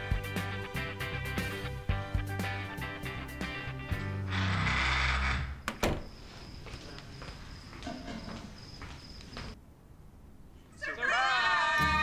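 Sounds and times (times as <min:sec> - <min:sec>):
background music: 0:00.0 - 0:05.0, 0:11.8 - 0:12.0
wooden door pushed shut: 0:05.7 - 0:06.1.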